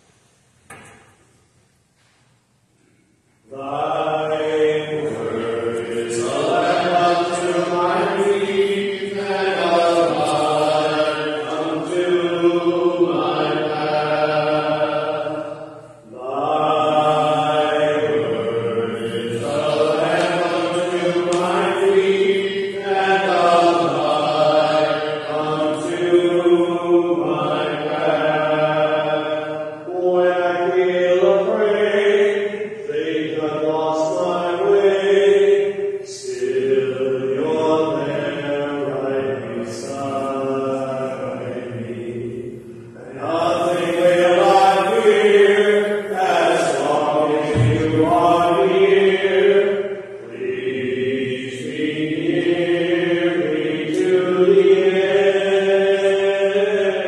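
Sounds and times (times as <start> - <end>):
liturgical chant singing: 3.4 - 57.0.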